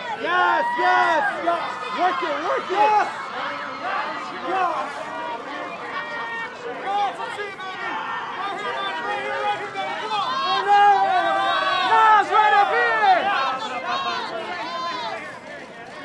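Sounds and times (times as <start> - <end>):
crowd shouting over one another: 0.0 - 15.5.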